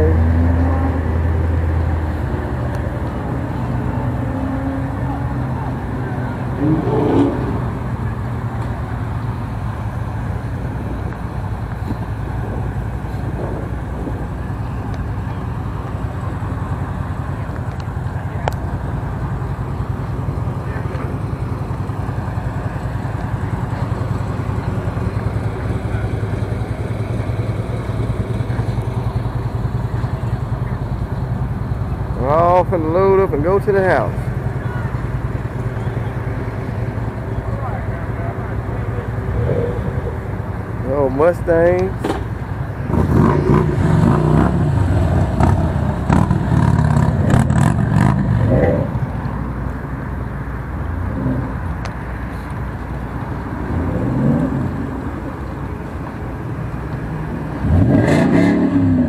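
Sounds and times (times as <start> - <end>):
low vehicle engine drone: 0.0 - 59.0.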